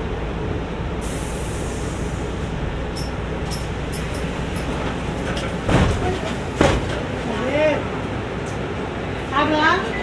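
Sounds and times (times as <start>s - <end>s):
bus engine idling: 0.0s - 10.0s.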